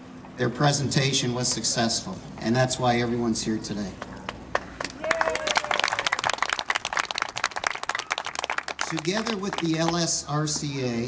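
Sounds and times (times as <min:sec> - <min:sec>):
audience applauding: 0:04.5 - 0:10.1.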